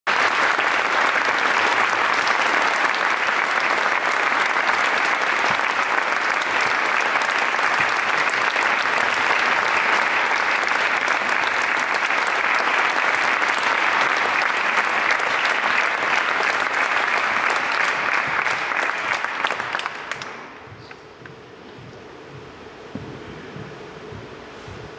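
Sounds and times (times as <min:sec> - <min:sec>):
audience applauding: 0:00.0 - 0:21.0.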